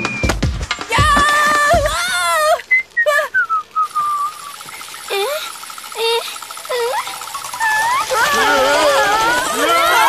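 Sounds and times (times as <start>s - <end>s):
falling whistle tone: 2.6s - 5.1s
rapidly pulsing high tone: 3.8s - 10.0s.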